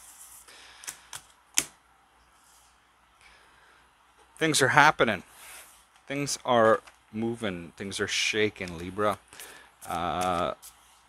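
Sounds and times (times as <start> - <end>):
cards sliding rustle: 5.3 - 7.0, 8.5 - 11.0.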